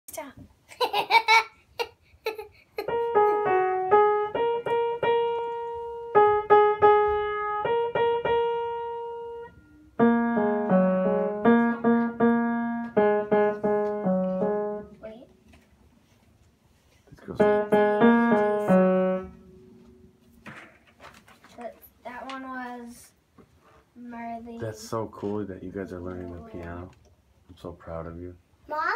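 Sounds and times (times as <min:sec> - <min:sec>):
upright piano played slowly: 0:02.8 - 0:15.0, 0:17.2 - 0:20.4.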